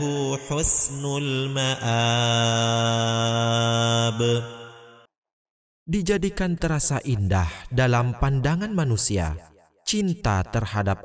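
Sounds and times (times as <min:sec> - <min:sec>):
man reciting in long note: 0:00.0 - 0:05.0
man speaking: 0:05.9 - 0:11.0.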